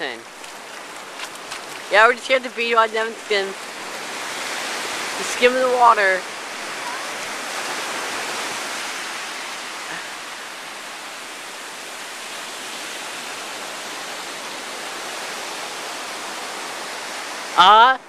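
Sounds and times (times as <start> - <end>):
waves breaking on sandy beach: 0.0 - 18.0.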